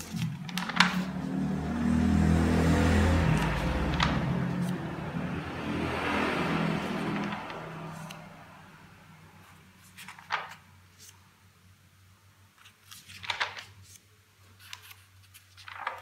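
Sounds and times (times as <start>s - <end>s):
notebook page turning rustle: 0.0s - 1.2s, 3.4s - 4.8s, 7.0s - 8.2s, 9.4s - 11.2s, 12.6s - 16.0s
passing vehicle engine hum: 0.0s - 9.5s.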